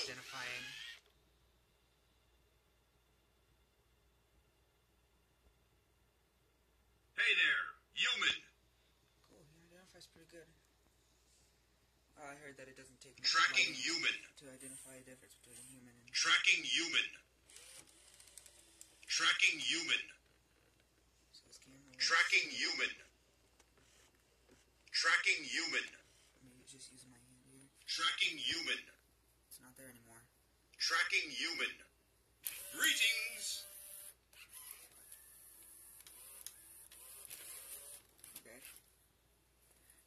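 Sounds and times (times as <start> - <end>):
toy robot motors whirring: 0.0 - 1.0, 17.4 - 19.1, 32.4 - 38.8
faint room hiss: 0.0 - 40.0.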